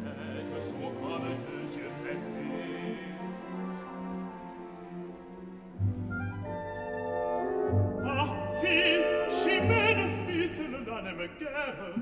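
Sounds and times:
orchestral opera music: 0.0 - 12.0.

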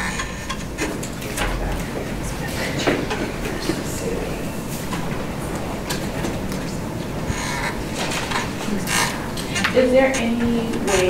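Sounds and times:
rumbling room noise: 0.0 - 11.0.

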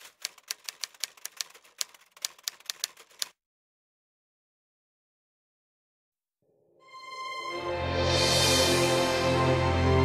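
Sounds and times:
typewriter key strikes: 0.0 - 3.3.

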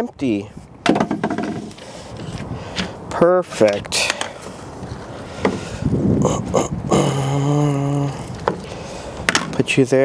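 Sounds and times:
man humming with effort: 6.0 - 8.4.

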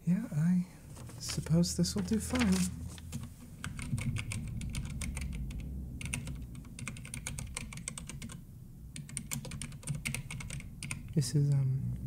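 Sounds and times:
typing on computer keyboard: 2.1 - 8.4, 9.0 - 11.2.

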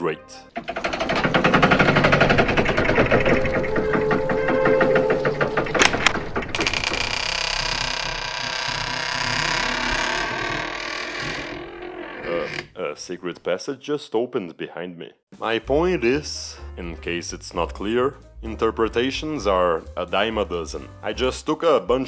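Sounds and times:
mechanical rattling and grinding: 0.4 - 12.7.

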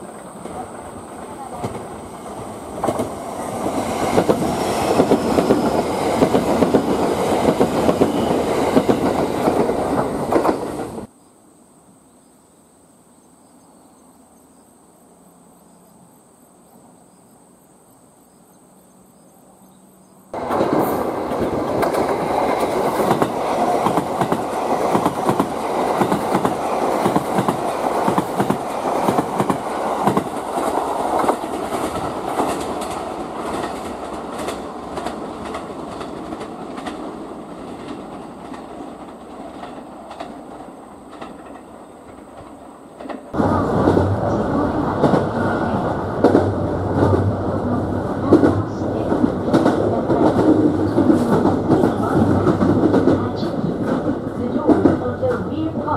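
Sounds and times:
electric train passing at speed: 0.0 - 11.1, 18.7 - 55.9.

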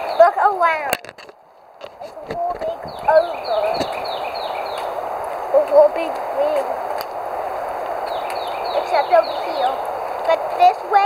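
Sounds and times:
outdoor background hiss: 0.0 - 11.0
bird whistling song: 2.8 - 5.0, 8.0 - 10.2.

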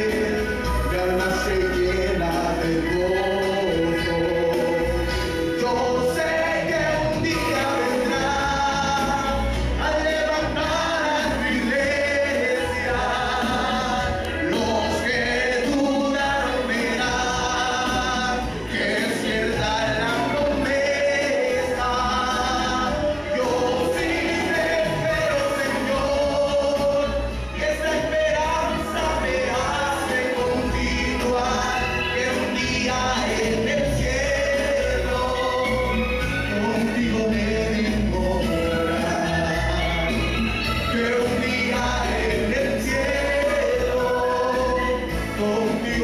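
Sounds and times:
congregation singing a hymn: 0.0 - 46.0.

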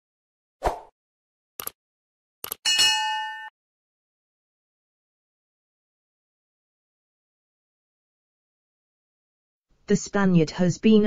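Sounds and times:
bell ding: 2.7 - 3.5.

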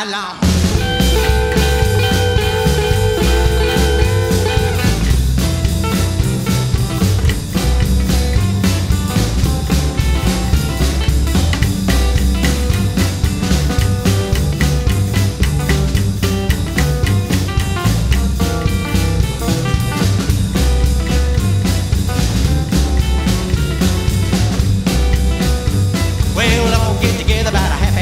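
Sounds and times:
electric guitar: 0.0 - 28.0
drum kit beat: 0.4 - 28.0.

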